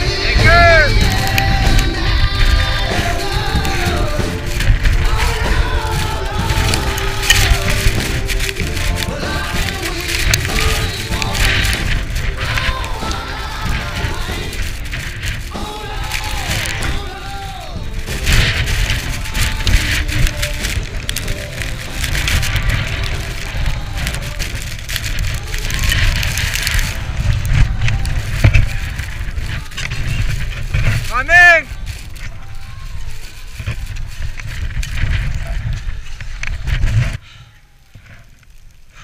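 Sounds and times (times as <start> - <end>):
music: 0.0 - 26.8
wind buffeting microphone: 0.0 - 39.0.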